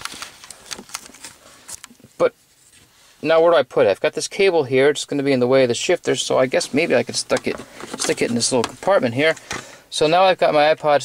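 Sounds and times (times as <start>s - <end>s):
handling clicks and rustles: 0.0s - 2.0s, 6.5s - 9.7s.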